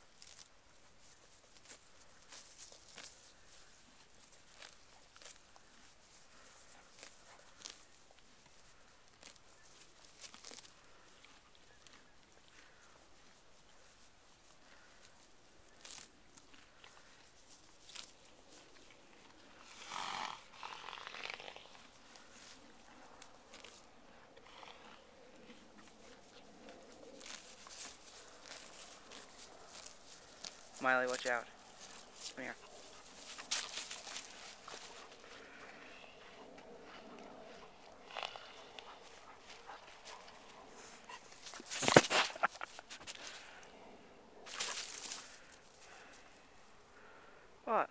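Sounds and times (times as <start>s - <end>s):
horse snorting: 19.4s - 22.4s, 23.6s - 27.5s, 31.8s - 43.6s
dog snuffling and licking microphone: 32.6s - 43.5s.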